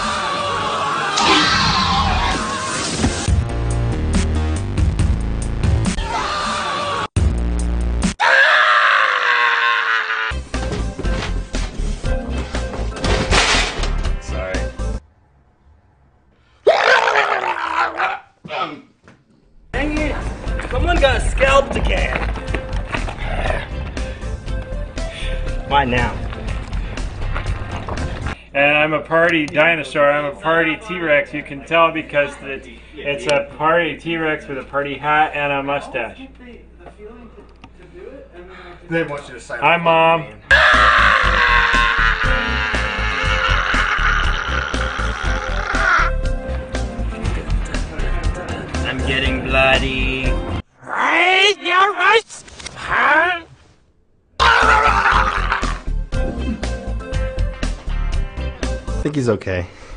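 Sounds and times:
man screaming: 0:00.0 - 0:02.8, 0:06.0 - 0:07.1, 0:08.2 - 0:10.4, 0:16.6 - 0:18.8, 0:40.5 - 0:46.2, 0:54.4 - 0:55.9
background music with steady beat: 0:10.4 - 0:15.0, 0:19.8 - 0:28.4, 0:46.1 - 0:50.6, 0:55.9 - 0:59.3
man yelling roughly: 0:16.6 - 0:18.8, 0:40.5 - 0:46.1, 0:51.0 - 0:52.2, 0:54.4 - 0:55.9.

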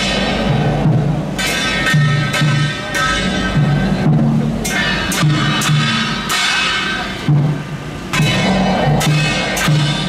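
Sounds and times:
hand cymbals clashing: 0:00.0 - 0:10.0
large barrel drum beaten: 0:00.0 - 0:10.0.

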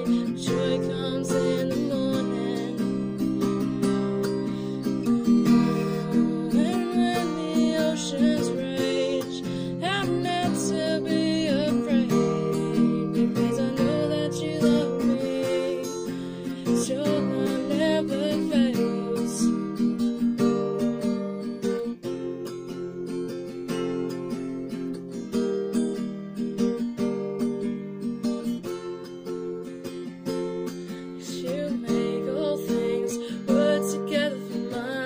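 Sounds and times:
person singing: 0:00.0 - 0:19.8, 0:31.2 - 0:35.0
acoustic guitar strummed chords: 0:00.0 - 0:35.0.

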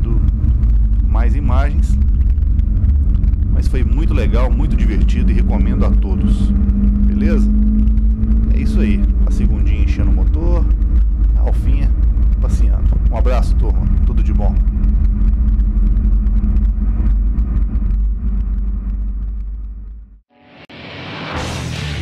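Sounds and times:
tyre road rumble: 0:00.0 - 0:20.3
music: 0:20.3 - 0:22.0.

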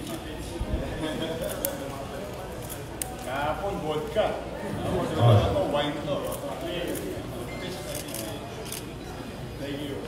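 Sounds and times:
quiet talk: 0:00.0 - 0:10.0.

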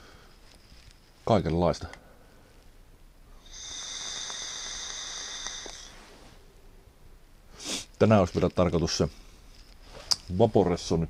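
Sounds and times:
e-cigarette hissing whistle: 0:03.4 - 0:05.9.

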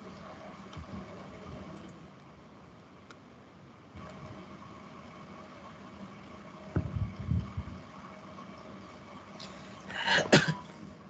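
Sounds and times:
low rumble: 0:06.7 - 0:08.0.

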